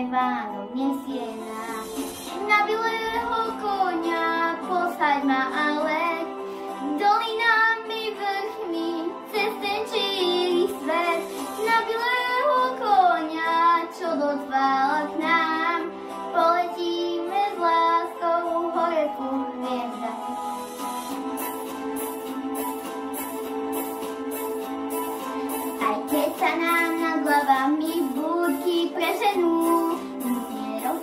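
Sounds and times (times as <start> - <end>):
girl singing into microphone: 0.0 - 20.4, 25.8 - 31.0
musical accompaniment: 0.0 - 31.0.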